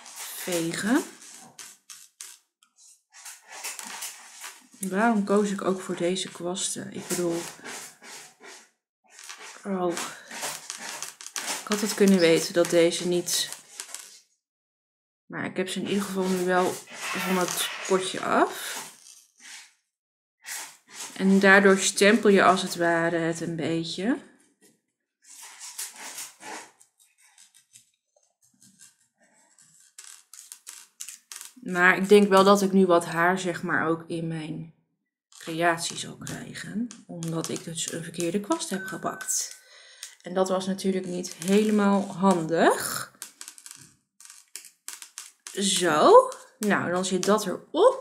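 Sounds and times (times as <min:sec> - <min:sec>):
paintbrush dabbing through stencil: 0:00.0 - 0:04.8, 0:06.3 - 0:14.0, 0:15.8 - 0:19.1
paintbrush scratching through stencil: 0:00.0 - 0:05.1, 0:05.9 - 0:14.2, 0:15.8 - 0:19.7, 0:20.4 - 0:22.8, 0:25.3 - 0:31.6, 0:40.8 - 0:47.5.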